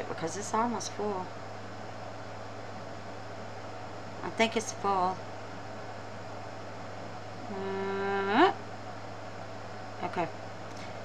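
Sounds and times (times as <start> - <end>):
low background hum: 0.0 - 11.0
woman humming: 7.4 - 8.6.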